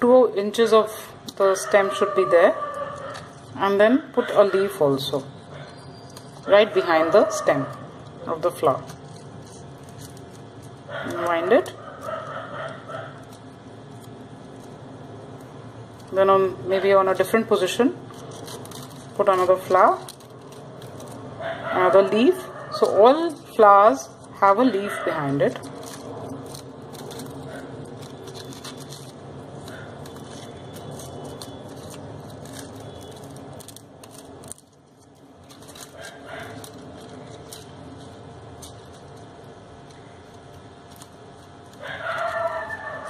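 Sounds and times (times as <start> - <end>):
rustling of tape and paper: 0.5 - 43.0.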